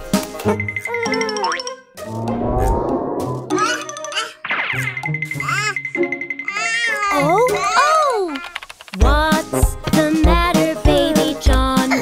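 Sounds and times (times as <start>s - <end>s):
children's background music: 0.0s - 12.0s.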